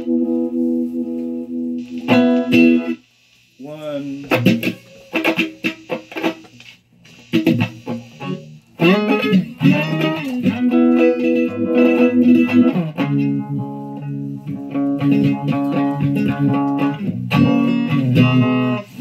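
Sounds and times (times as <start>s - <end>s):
electric guitar strumming chords: 0.0s - 3.0s, 4.1s - 6.6s, 7.3s - 19.0s.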